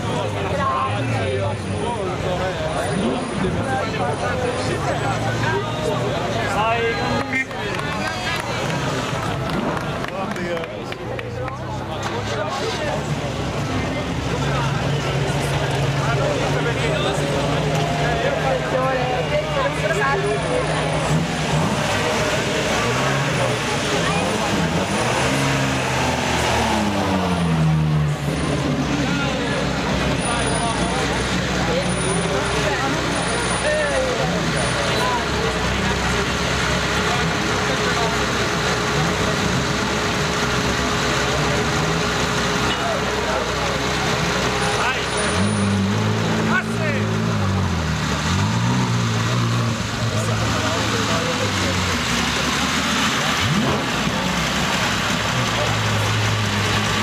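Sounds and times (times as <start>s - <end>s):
car engines idling and revving: 0.0s - 57.0s
crowd chatter: 0.0s - 57.0s.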